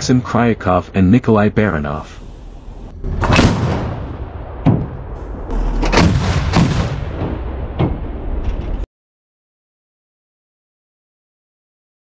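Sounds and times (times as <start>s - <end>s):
anti-aircraft gun firing: 3.2s - 8.8s.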